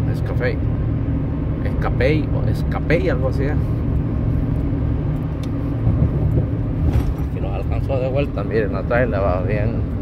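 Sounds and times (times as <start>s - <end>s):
road and engine rumble in cab: 0.0s - 10.0s.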